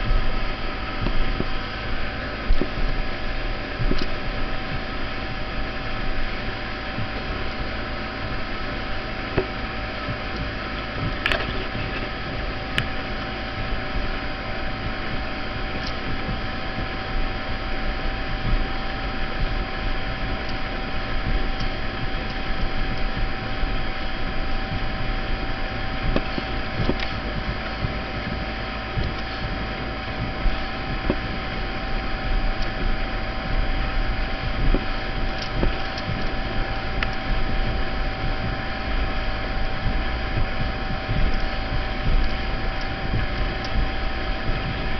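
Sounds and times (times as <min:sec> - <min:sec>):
motorboat engine drone: 0:00.0 - 0:44.9
rush of boat wake: 0:00.0 - 0:44.9
wind buffeting microphone: 0:00.0 - 0:44.9.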